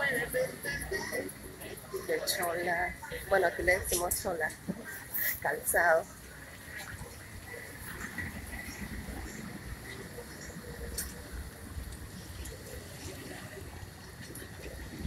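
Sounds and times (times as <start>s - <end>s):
low steady street rumble: 0.0s - 15.0s.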